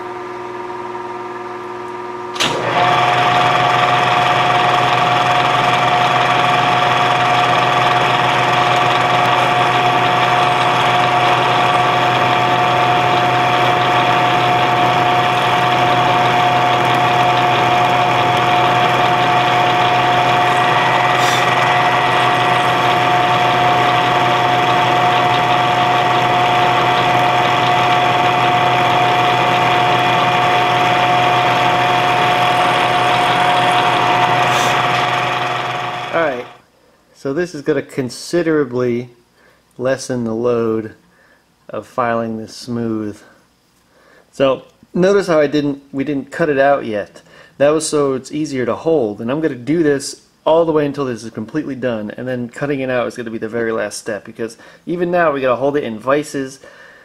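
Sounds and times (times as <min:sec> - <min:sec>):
milling machine whine: 0:02.4 - 0:36.6.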